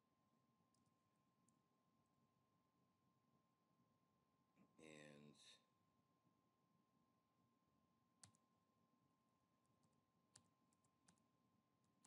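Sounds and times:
computer keyboard clicks: 8.2 - 8.4, 9.8 - 11.2.

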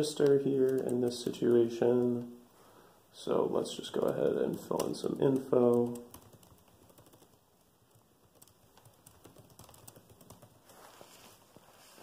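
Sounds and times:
typing on computer keyboard: 0.1 - 1.5, 4.0 - 10.6.

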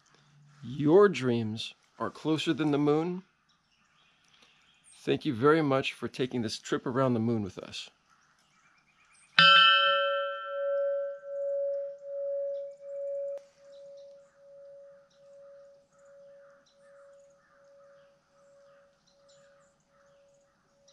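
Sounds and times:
large bell ringing: 9.4 - 16.4.

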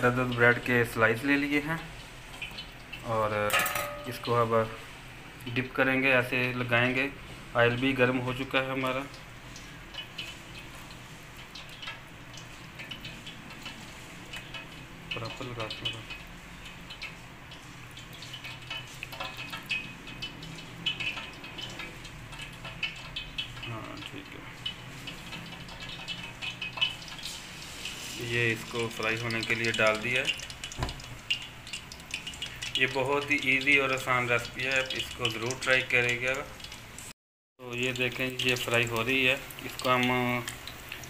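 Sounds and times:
hot oil crackling: 0.0 - 41.0
metal utensil clinking on plate: 3.5 - 4.3
wet squelching of bread in batter: 7.2 - 37.1.

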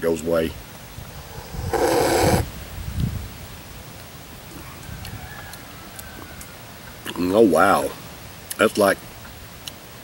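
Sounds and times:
man slurping: 1.1 - 2.5.

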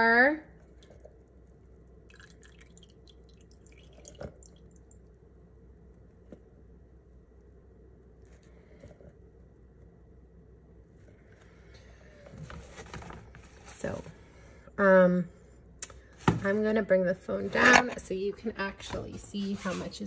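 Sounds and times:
liquid dripping and trickling: 2.0 - 5.2.

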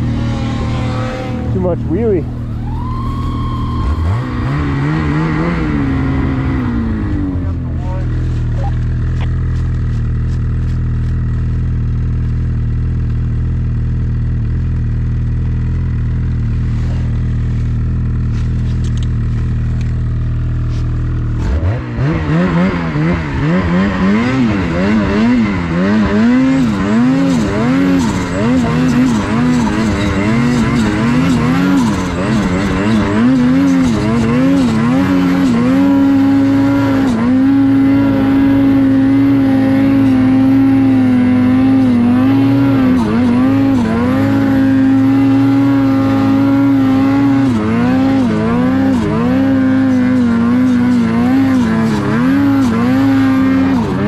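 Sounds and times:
snowmobile engine: 0.0 - 54.0.

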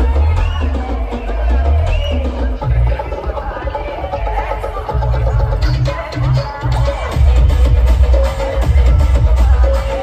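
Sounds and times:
loud dance music: 0.0 - 10.0.

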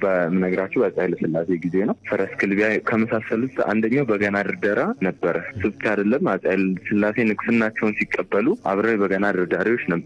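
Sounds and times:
man speaking: 0.0 - 10.0.

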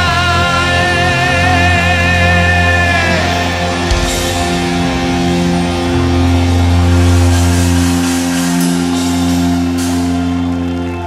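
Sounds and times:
metal band sustained chord: 0.0 - 11.0
deep bass note: 0.4 - 11.0.

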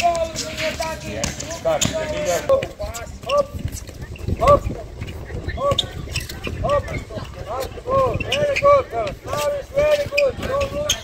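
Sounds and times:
running footsteps: 0.0 - 11.0.

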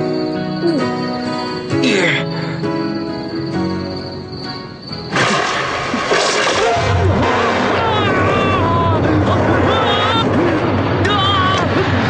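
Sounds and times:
low rumble: 6.0 - 12.0.

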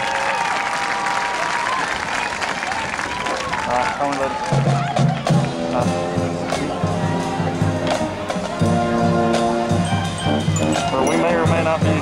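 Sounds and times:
brass chords: 5.2 - 12.0.

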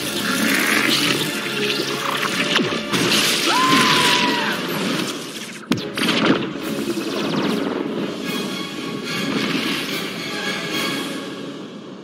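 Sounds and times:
dramatic film score: 0.0 - 12.0.

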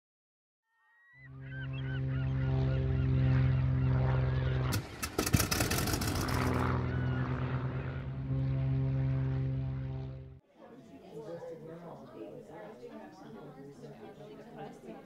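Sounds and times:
gull calls: 0.8 - 4.7, 6.7 - 8.0
propeller plane engine drone: 1.2 - 10.4.

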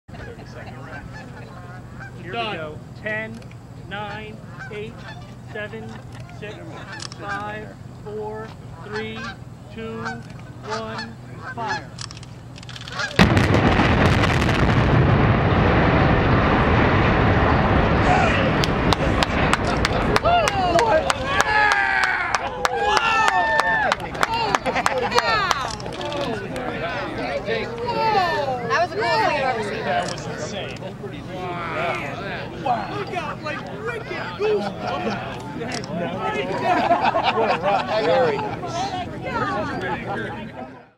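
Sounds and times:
steady low hum: 0.1 - 40.9
geese honking: 0.2 - 2.5, 4.0 - 7.7, 8.7 - 12.0, 12.9 - 13.2
sharp cracks: 12.0 - 22.4
explosive blast: 13.2 - 21.1
heavy rumble of bridge collapsing: 13.2 - 21.5.

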